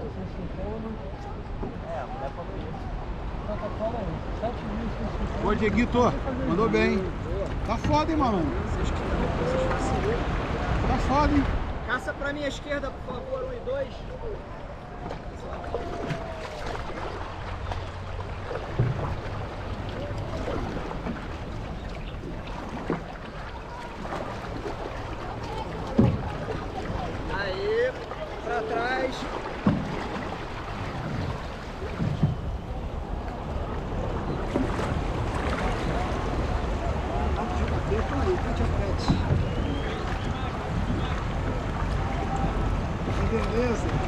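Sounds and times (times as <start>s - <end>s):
water rushing along hull: 0.0s - 44.0s
paddles splashing in water: 0.6s - 44.0s
wind buffeting microphone: 13.8s - 44.0s.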